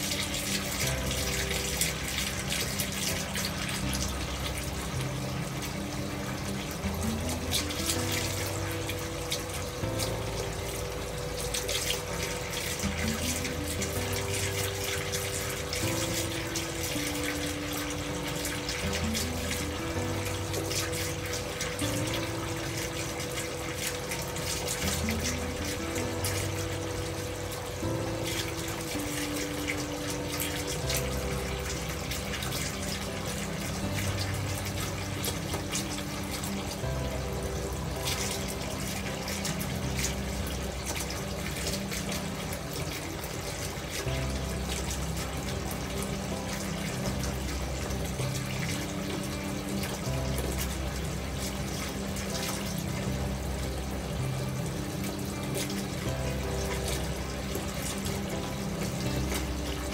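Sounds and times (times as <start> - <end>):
gentle music with held notes: 0.0 - 59.9
water pouring into bathtub: 0.0 - 59.9.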